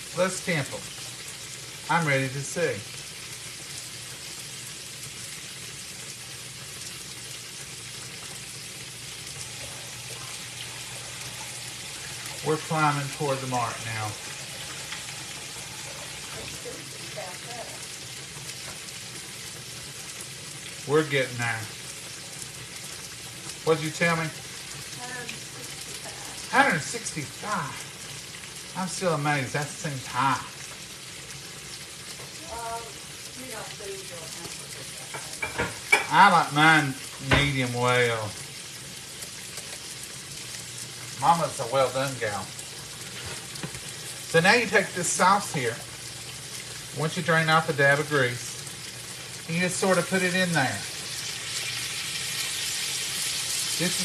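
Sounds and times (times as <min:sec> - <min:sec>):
patties sizzling in a skillet: 0:00.0 - 0:54.0.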